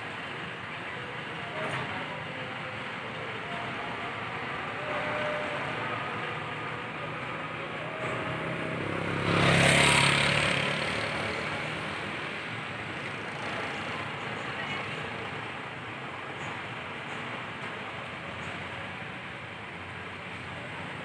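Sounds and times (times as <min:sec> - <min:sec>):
bus diesel engine running: 0:00.0 - 0:21.0.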